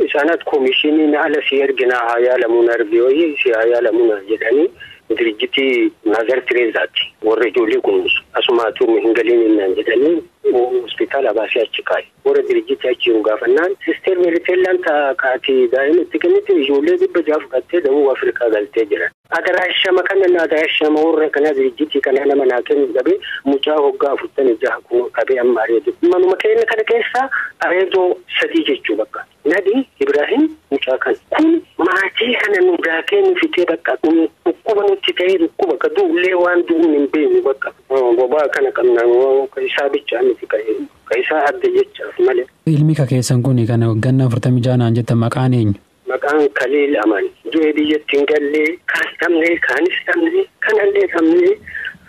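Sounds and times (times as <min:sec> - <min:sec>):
radio news voice speaking: 0:27.0 - 0:28.3, 0:28.9 - 0:46.3, 0:47.1 - 0:52.0.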